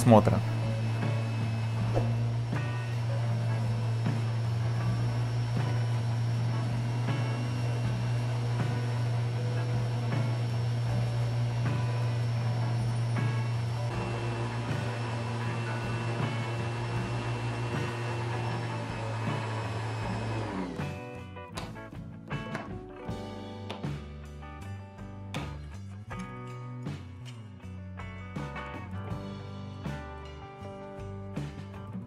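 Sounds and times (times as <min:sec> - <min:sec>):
electric orbital sander running: 0:00.0 - 0:21.0
background music: 0:00.0 - 0:32.0.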